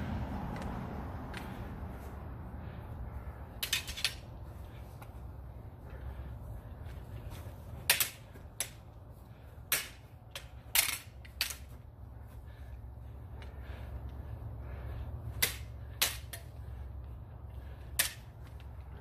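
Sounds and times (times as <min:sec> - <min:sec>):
low steady hum: 0:00.0 - 0:19.0
swords clacking: 0:03.6 - 0:04.3, 0:07.8 - 0:08.8, 0:09.7 - 0:11.7, 0:15.4 - 0:16.6, 0:17.9 - 0:18.3.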